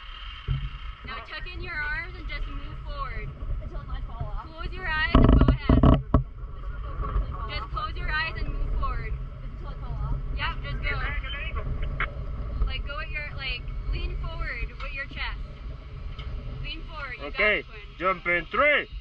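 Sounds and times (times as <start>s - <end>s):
low wind rumble on microphone: 0.0s - 19.0s
wind buffeting bumps: 0.0s - 19.0s
quiet indistinct voices: 1.1s - 15.6s, 16.2s - 19.0s.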